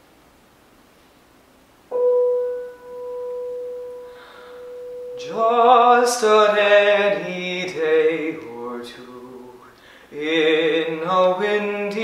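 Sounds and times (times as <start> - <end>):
single piano note ringing: 1.9 - 6.0.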